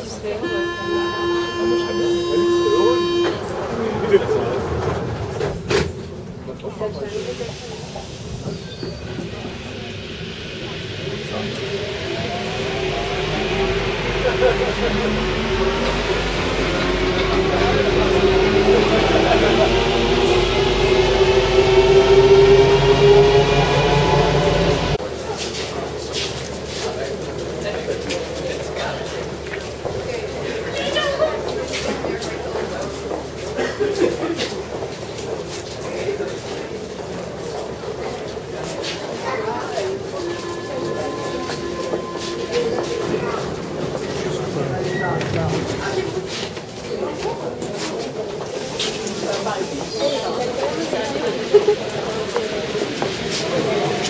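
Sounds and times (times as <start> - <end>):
crowd voices: 0.0 - 54.0
low train rumble: 0.0 - 54.0
passengers talking: 0.0 - 54.0
crowd footsteps: 25.0 - 39.2, 39.8 - 54.0
train motors whining: 39.7 - 46.8.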